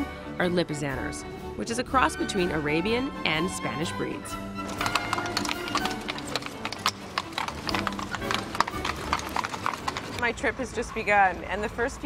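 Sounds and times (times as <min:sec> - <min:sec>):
hooves clip-clopping on cobblestones: 0:03.4 - 0:12.0.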